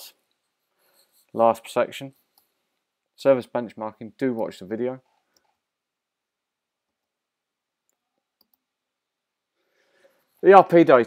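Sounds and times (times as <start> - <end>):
very faint clicks: 7.8 - 8.7.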